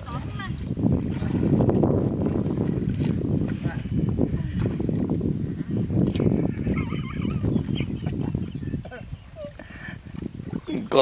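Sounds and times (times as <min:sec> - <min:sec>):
paddle splashing in water: 0:00.0 - 0:11.0.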